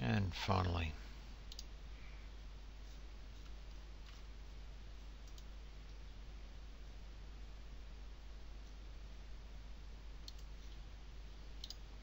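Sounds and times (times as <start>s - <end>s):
computer mouse clicks: 1.5s - 1.7s, 5.2s - 5.5s, 10.2s - 10.8s, 11.6s - 11.9s.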